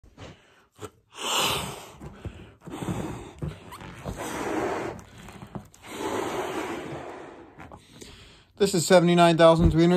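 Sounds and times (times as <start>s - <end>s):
breath blowing into balloon: 0.2s - 8.5s.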